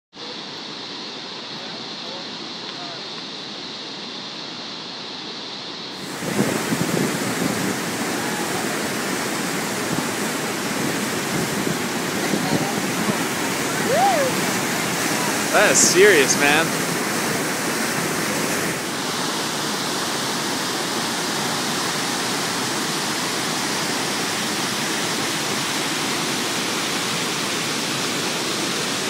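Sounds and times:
waterfall and rapids rushing: 0:00.2 - 0:29.0.

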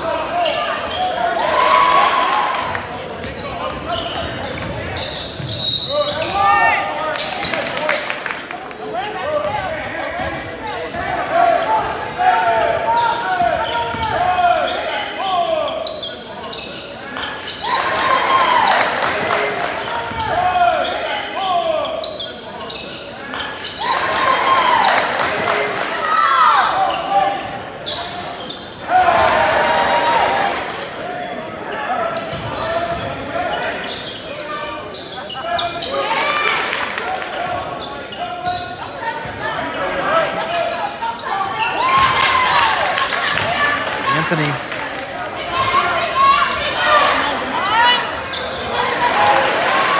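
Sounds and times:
sneakers squeaking: 0:00.0 - 0:01.9, 0:02.6 - 0:08.1, 0:09.4 - 0:18.4, 0:19.8 - 0:25.0, 0:26.6 - 0:29.4, 0:30.9 - 0:36.4, 0:37.2 - 0:44.7, 0:45.6 - 0:49.3
echoing voices of crowd: 0:00.0 - 0:49.9.

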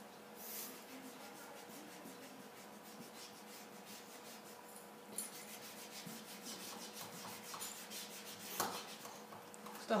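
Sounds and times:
eraser rubbing on paper: 0:00.4 - 0:04.7, 0:05.3 - 0:09.2.

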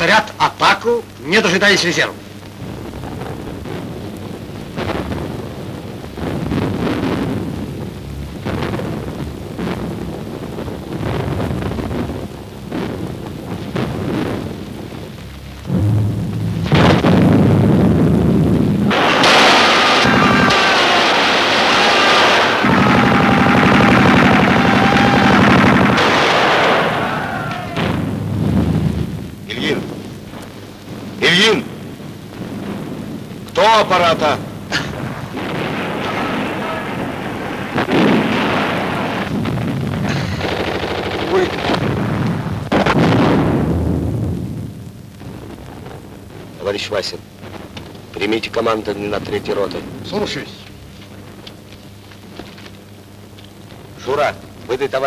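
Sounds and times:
explosions: 0:02.4 - 0:55.0
gunfire: 0:15.7 - 0:43.7.

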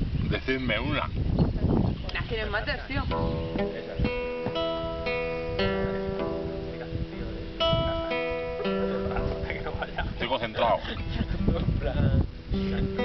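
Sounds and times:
guitar slow arpeggio: 0:03.0 - 0:13.0.

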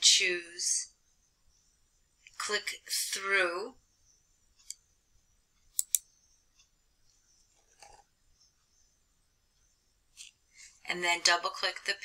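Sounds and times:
computer mouse clicks: 0:05.7 - 0:06.7.

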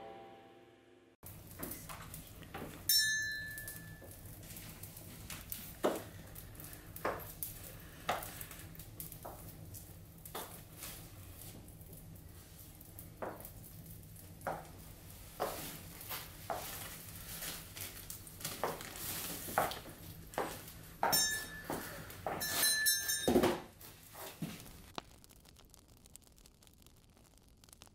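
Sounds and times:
high metallic ringing: 0:02.9 - 0:04.2, 0:21.0 - 0:23.8.

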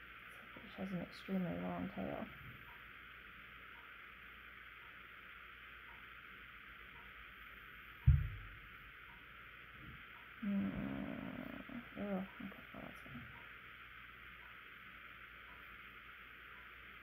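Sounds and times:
steady background hiss: 0:00.0 - 0:17.0
dull thump: 0:08.0 - 0:08.5.

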